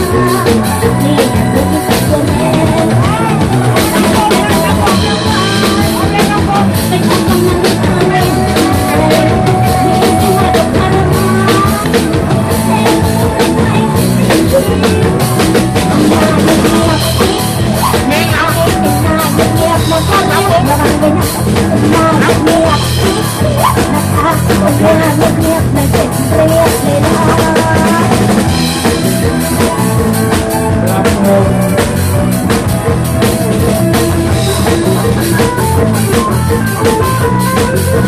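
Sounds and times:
live band music: 0.0 - 38.0.

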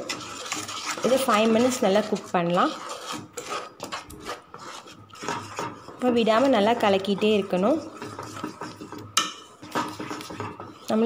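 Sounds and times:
wooden spatula scraping a pan: 0.0 - 11.0.

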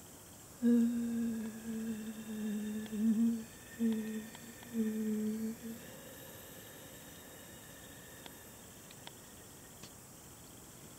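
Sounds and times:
person humming low: 0.6 - 9.7.

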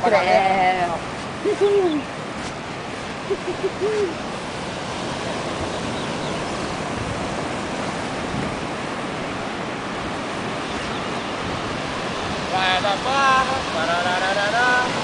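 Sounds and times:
ocean surf breaking: 0.0 - 15.0
person humming: 3.4 - 4.2.

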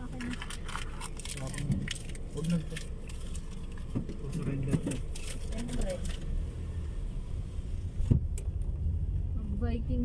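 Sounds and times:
car engine and tyre rumble: 0.0 - 10.0
short thump: 8.0 - 8.4.

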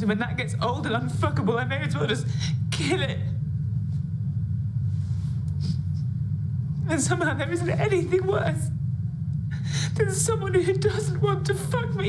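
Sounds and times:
low background rumble: 0.0 - 12.0
woman breathing softly: 9.5 - 10.0.

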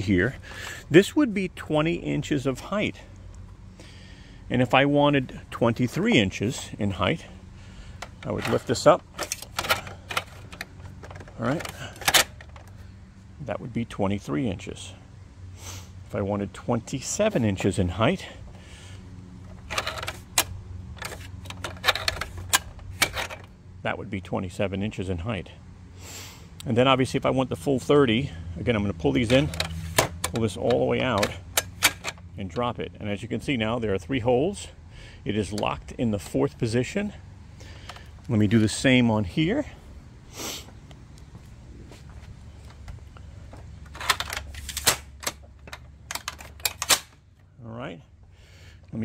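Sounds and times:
metal clicks and rattles: 8.0 - 12.8, 19.4 - 23.5, 29.2 - 32.3, 43.8 - 47.2.

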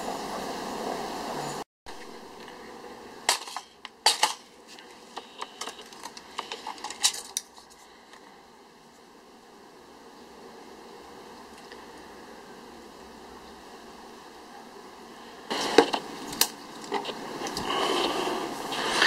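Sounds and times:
faint steady background noise: 0.0 - 19.0.

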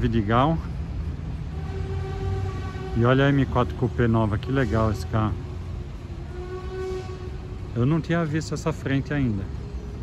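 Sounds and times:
car engine low rumble: 0.0 - 10.0.

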